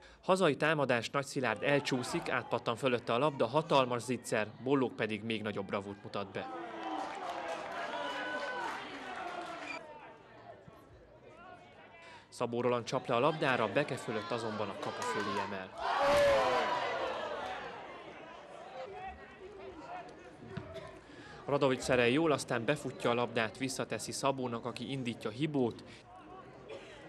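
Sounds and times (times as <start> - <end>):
people shouting and calling: 13.3 - 19.3.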